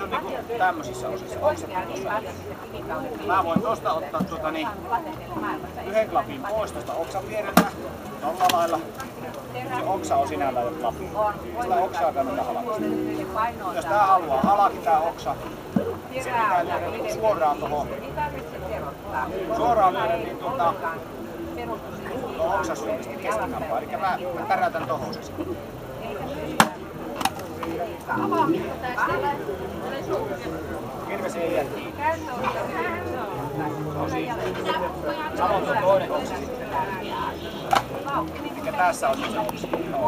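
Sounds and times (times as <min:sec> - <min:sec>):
axe chopping a log: 0:07.5 - 0:07.8, 0:26.6 - 0:27.4.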